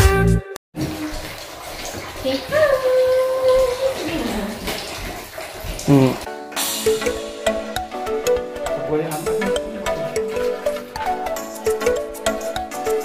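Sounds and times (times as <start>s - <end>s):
music: 0.0s - 0.6s, 6.3s - 13.0s
water running and splashing: 0.8s - 13.0s
person calling out: 5.9s - 6.3s.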